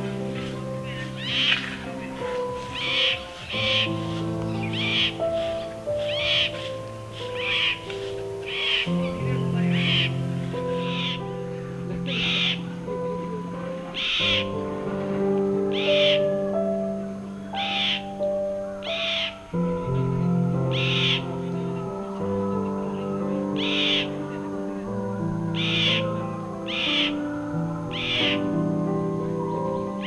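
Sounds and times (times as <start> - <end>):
bird giving harsh calls: 0.0 - 13.1, 13.9 - 14.6, 15.7 - 16.5, 17.4 - 20.0, 20.6 - 21.8, 23.4 - 24.3, 25.5 - 28.6
slow held chords music: 0.0 - 30.0.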